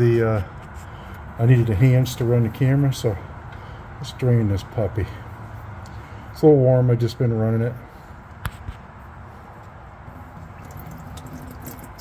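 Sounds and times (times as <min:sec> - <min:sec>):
oil pouring in steady stream: 0:10.0 - 0:12.0.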